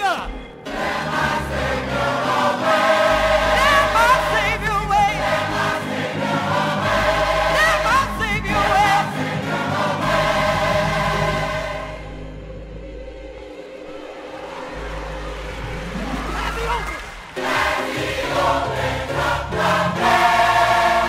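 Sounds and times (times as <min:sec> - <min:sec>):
gospel choir singing: 0:00.0 - 0:16.3, 0:17.1 - 0:21.0.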